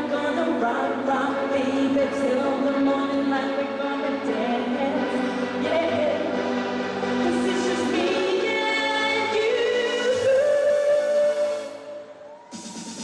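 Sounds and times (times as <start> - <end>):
woman singing into microphone: 0.0 - 6.4, 7.2 - 12.0
backing music: 0.0 - 13.0.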